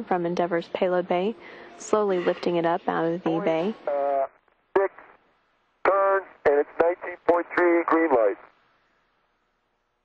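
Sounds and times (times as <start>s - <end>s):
man speaking: 3.7s - 5.1s, 5.8s - 8.5s.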